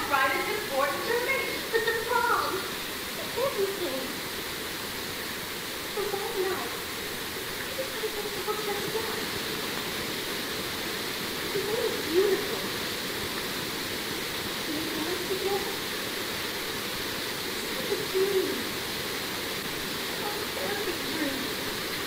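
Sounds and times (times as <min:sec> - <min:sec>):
distant stage voices: 0:00.0 - 0:04.2
recording hiss: 0:00.0 - 0:22.0.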